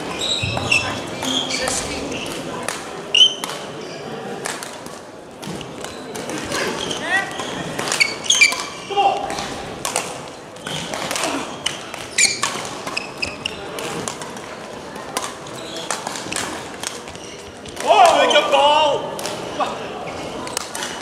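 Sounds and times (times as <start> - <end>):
shoes squeaking on court floor: 0.0 - 2.5, 3.1 - 4.2, 5.4 - 8.9, 10.3 - 14.4, 15.4 - 18.5.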